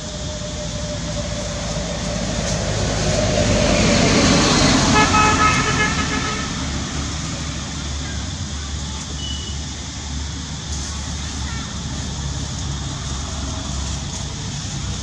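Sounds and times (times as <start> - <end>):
vehicle passing: 0.0 - 9.0
horn toot: 4.8 - 6.6.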